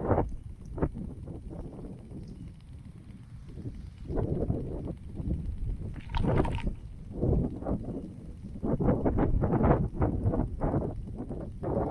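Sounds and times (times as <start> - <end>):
sprinklers spraying water: 0.0 - 11.9.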